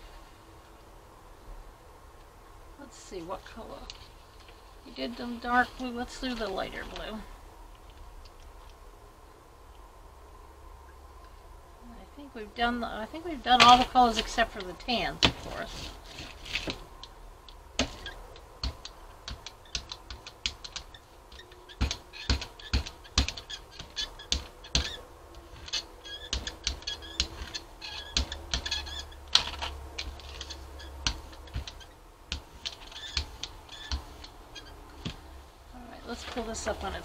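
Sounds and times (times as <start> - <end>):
roller rolling sticky paint: 13.5 - 16.9, 17.8 - 35.3.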